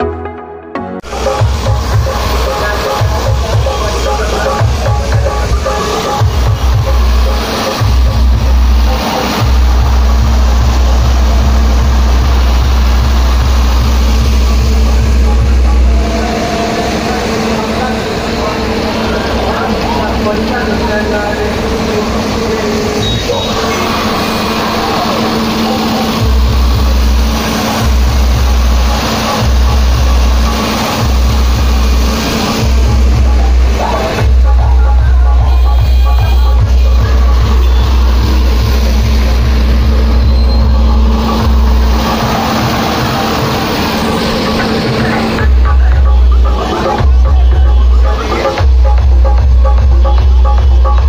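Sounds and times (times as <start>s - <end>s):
loud bass-heavy dj music: 0.8s - 51.0s
deep bass pulses: 1.0s - 51.0s.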